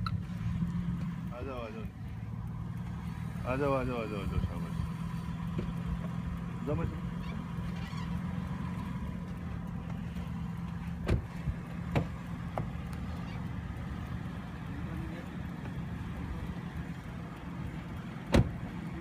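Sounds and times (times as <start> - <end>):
car engine idling: 0.0 - 19.0
car door clicking open: 11.0 - 11.3, 11.9 - 12.2, 18.3 - 18.6.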